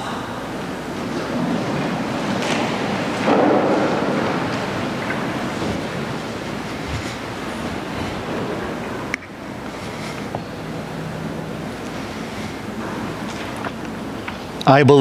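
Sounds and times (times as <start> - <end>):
rushing room hiss: 0.0 - 15.0.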